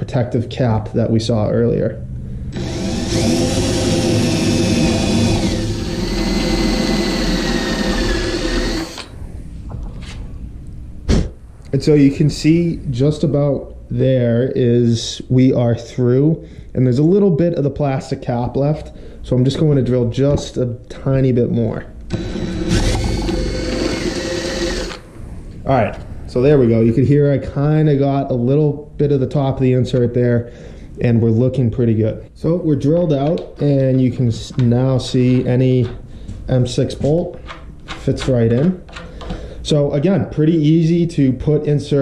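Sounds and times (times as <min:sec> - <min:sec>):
electric drill boring: 0:02.5 - 0:09.2, 0:22.1 - 0:25.0.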